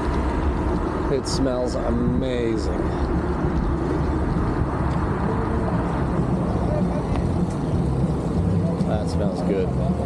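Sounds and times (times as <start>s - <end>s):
faint voices: 1.0s - 10.0s
wind on microphone: 1.9s - 8.6s.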